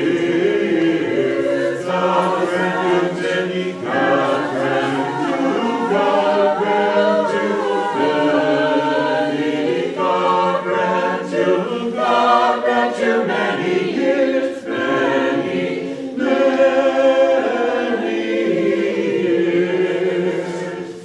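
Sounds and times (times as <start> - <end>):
choir singing a cappella: 0.0 - 21.0.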